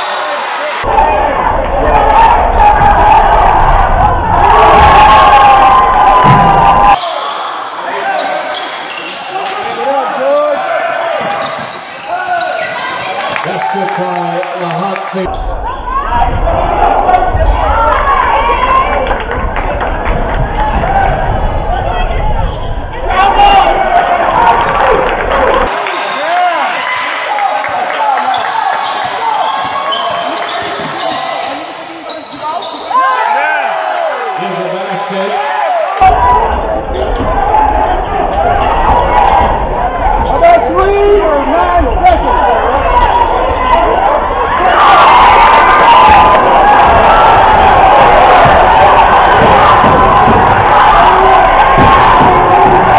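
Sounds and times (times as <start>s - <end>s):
crowd voices: 0.0s - 52.9s.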